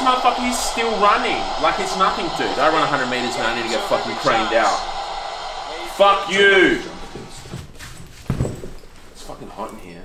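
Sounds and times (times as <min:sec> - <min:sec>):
soft knocks and rustles: 0:07.4 - 0:09.3.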